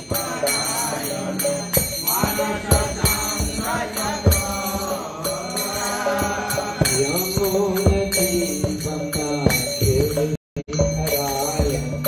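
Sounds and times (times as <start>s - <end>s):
sharp percussion strikes: 0.0s - 12.0s
sung chanting melody: 0.0s - 12.0s.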